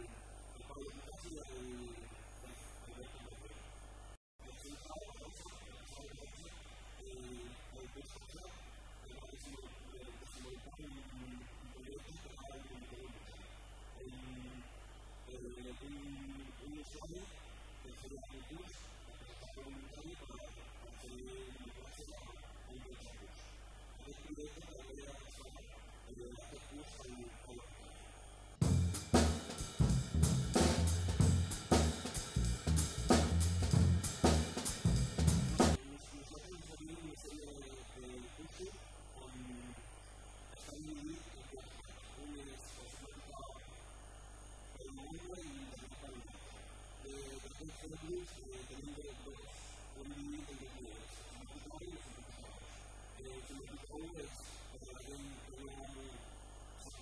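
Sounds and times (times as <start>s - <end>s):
man talking quietly: 0.0s - 3.8s, 4.4s - 44.0s, 44.7s - 57.0s
drum kit music: 28.6s - 35.8s.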